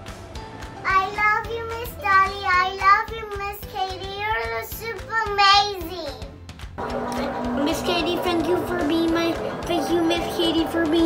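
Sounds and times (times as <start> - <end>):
young girl singing: 0.9 - 6.2.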